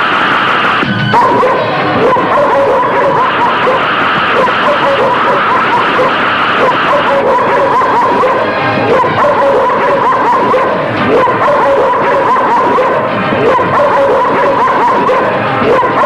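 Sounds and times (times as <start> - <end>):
dogs barking: 1.2 - 16.0.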